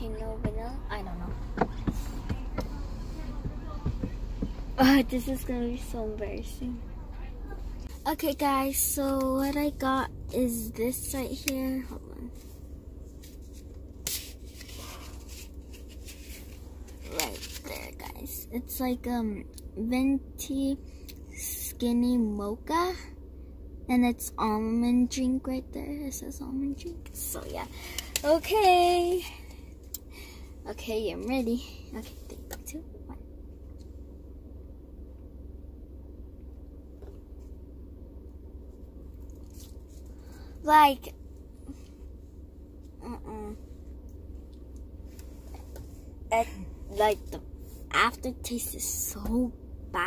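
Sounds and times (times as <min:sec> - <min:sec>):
low car cabin rumble: 0:00.0 - 0:50.0.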